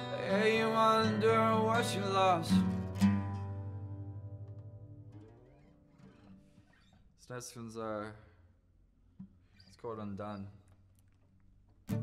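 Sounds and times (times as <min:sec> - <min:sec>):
acoustic guitar chord ringing: 0:00.0 - 0:06.4.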